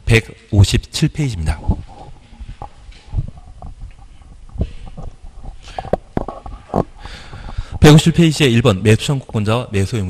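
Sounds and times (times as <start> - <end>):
microphone handling rumble: 1.4 - 9.5
microphone thumps: 1.6 - 8.0.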